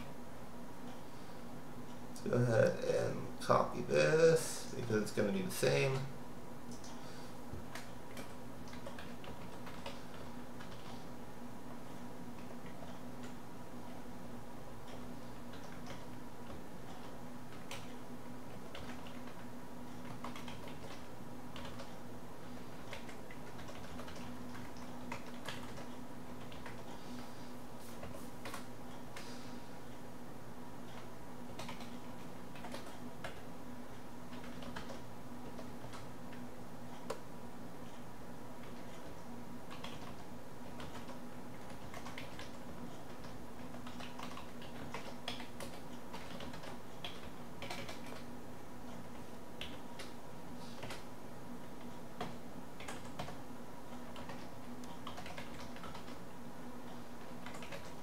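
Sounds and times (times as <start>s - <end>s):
low electrical hum: 0.0s - 58.0s
computer keyboard typing: 7.7s - 11.1s, 14.8s - 27.2s, 30.8s - 33.5s, 34.3s - 37.2s, 38.6s - 50.2s, 50.8s - 51.1s, 51.8s - 58.0s.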